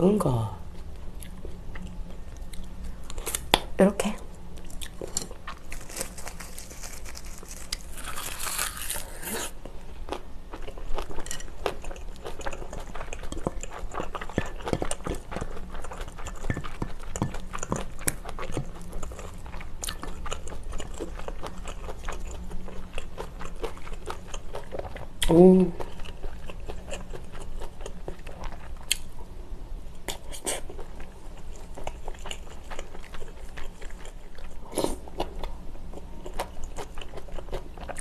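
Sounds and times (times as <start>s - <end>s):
chewing and crunching food: 4.6s - 29.4s, 30.0s - 38.0s.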